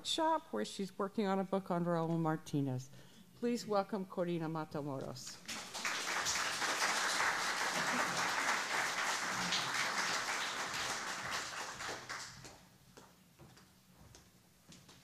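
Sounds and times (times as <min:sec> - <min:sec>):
audience applauding: 0:05.4 - 0:12.6.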